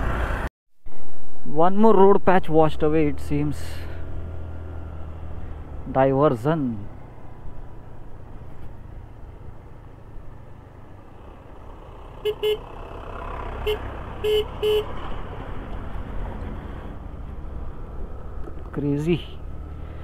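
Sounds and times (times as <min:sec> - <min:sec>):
scooter engine and road rumble: 0:02.6 - 0:20.0.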